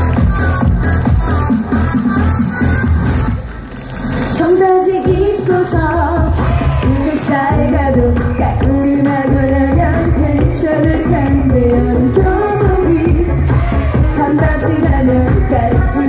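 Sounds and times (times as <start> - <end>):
heavy bass beat: 0.0 - 4.3, 5.0 - 16.0
woman singing: 4.4 - 16.0.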